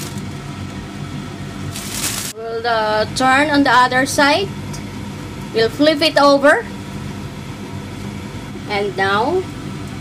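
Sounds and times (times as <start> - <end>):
plastic bag rustling: 0.0 - 0.4, 1.7 - 2.4
steady low hum: 0.0 - 10.0.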